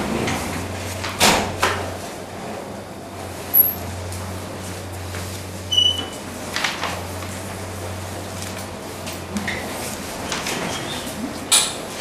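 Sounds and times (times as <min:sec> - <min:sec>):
high-pitched squeak: 0:03.5 - 0:03.8.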